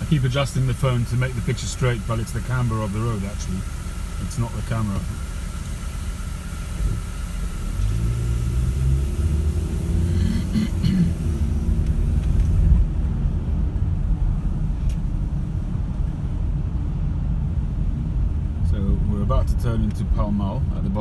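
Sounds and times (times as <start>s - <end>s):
car engine from inside cabin: 0.0s - 21.0s
road rumble: 0.0s - 21.0s.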